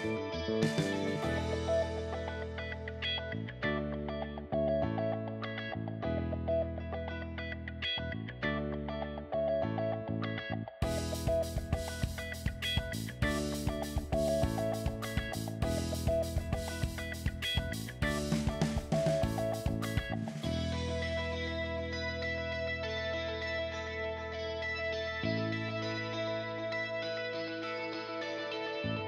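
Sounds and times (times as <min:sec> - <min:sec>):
background instrumental music: 0:00.0 - 0:10.0, 0:10.8 - 0:29.0.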